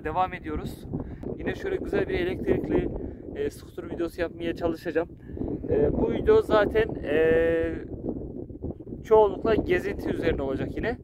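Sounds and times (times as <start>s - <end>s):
man's drawn-out hesitation sound: 0.0s - 7.9s
wind rumbling on microphone: 0.0s - 11.0s.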